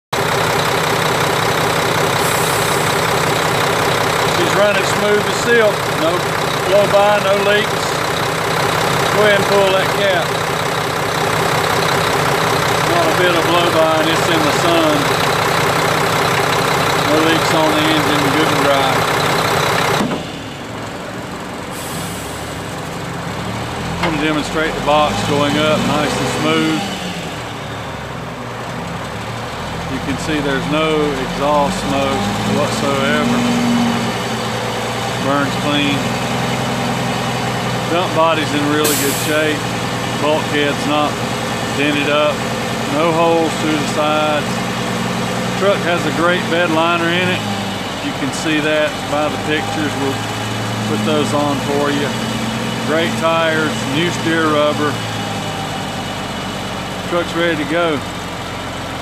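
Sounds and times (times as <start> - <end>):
diesel engine idling: 0.1 - 59.0.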